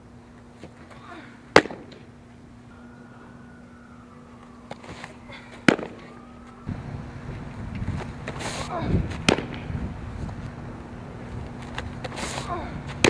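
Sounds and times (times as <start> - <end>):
ball smacking into mitt: 5.6 - 6.1, 9.2 - 9.6.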